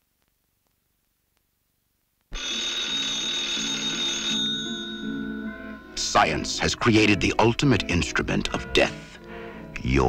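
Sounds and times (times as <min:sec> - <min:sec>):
telephone bell ringing: 0:02.4 - 0:07.4.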